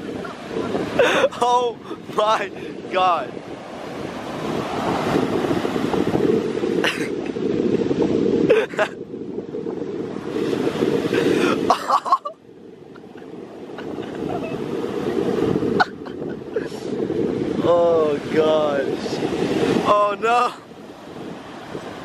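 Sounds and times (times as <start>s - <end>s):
surf breaking on beach: 0.0s - 22.0s
wind rumble on microphone: 0.0s - 22.0s.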